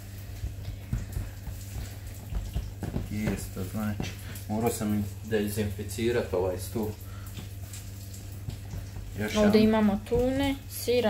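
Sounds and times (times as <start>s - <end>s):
fingertips tapping dough on countertop: 0.0s - 4.5s, 8.3s - 10.6s.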